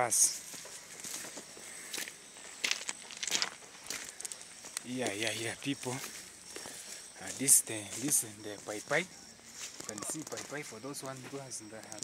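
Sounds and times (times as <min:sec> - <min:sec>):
footsteps on grass and soil: 0:00.1 - 0:12.0.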